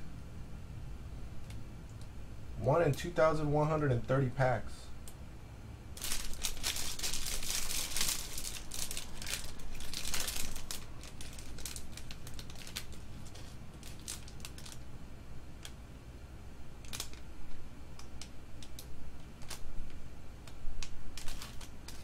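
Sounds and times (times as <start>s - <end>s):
card pack wrappers crinkling: 6.0s - 14.8s, 16.8s - 22.0s
cards rustling and clicking: 6.0s - 14.8s, 20.5s - 22.0s.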